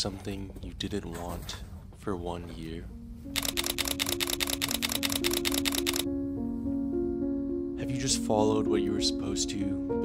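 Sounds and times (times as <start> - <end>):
soft music of held notes: 1.2 - 10.0
rapid sharp clicks: 3.4 - 6.1.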